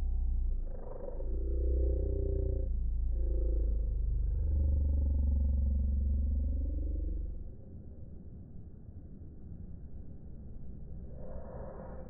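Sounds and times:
low pulsing rumble: 0.0 - 8.4.

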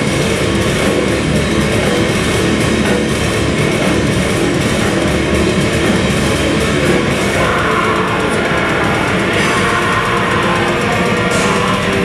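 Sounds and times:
heavy metal band playing: 0.0 - 12.0.

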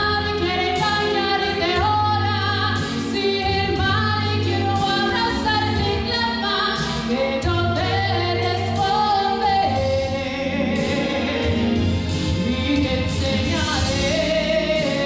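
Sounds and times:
sustained chords and bass: 0.0 - 15.0
woman singing gospel: 0.0 - 15.0.

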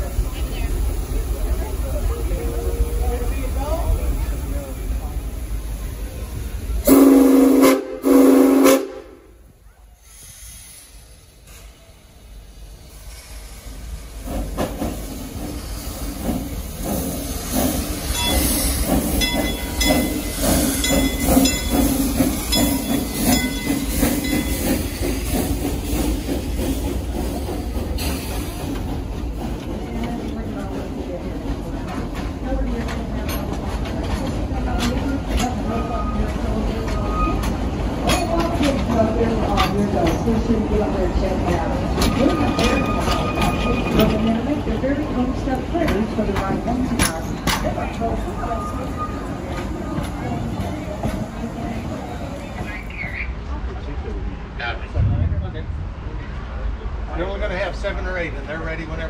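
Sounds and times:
steam locomotive chuffing: 0.0 - 53.6
steam whistle blasts: 6.9 - 9.2.

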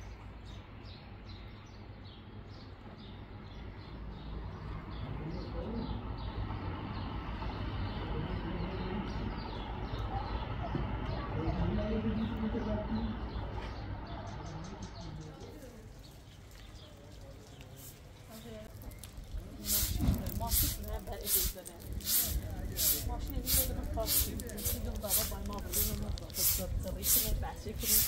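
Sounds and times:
broom sweeping pavement: 17.6 - 28.0.

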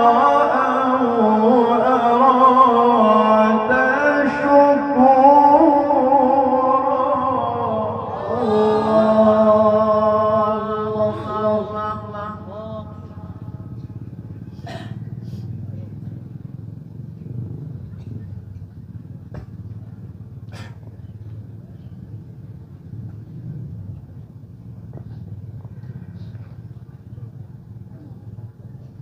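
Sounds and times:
indistinct voices: 0.0 - 16.8
steady low rumble: 0.0 - 29.0.

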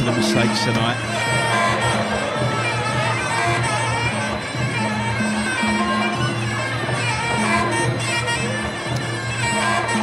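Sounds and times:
reedy oboe melody: 0.0 - 10.0
steady drumming: 0.0 - 10.0.

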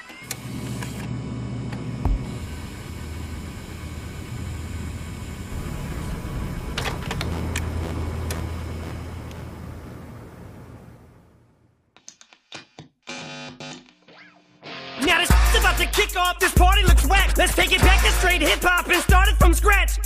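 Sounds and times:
low steady engine rumble: 2.4 - 11.4.

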